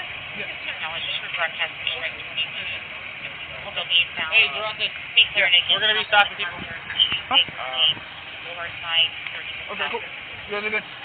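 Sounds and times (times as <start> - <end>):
hum of street traffic: 0.0 - 11.0
men speaking: 1.7 - 11.0.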